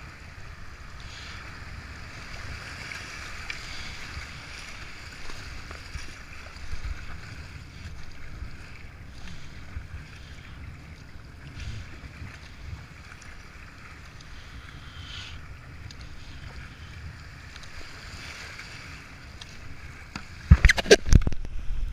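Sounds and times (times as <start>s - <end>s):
paddle strokes splashing: 0.0s - 21.6s
wind rumble on microphone: 0.0s - 21.9s.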